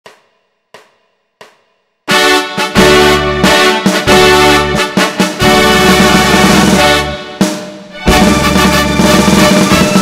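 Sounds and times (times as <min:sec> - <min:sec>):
percussion count-in clicks: 0:00.0 - 0:02.0.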